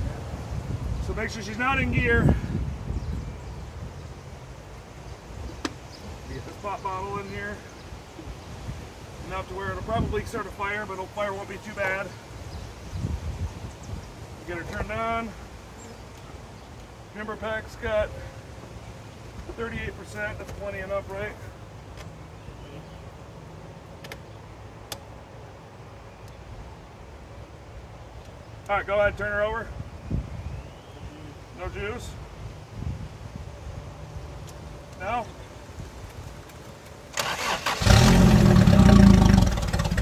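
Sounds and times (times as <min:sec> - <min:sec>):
wind rumbling on microphone: 0:00.0 - 0:10.9, 0:12.2 - 0:15.2, 0:29.0 - 0:31.2, 0:32.0 - 0:34.8.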